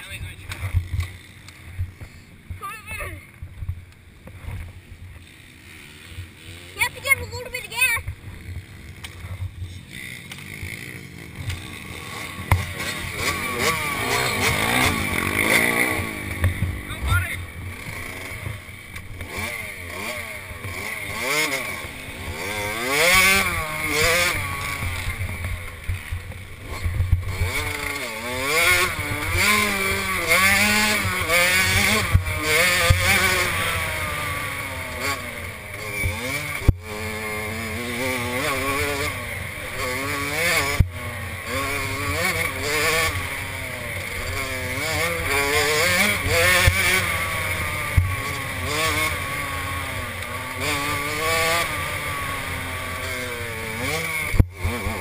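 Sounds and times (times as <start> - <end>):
two-stroke motorbike engines revving: 0.0 - 55.0
voices: 6.6 - 8.2, 16.8 - 17.6.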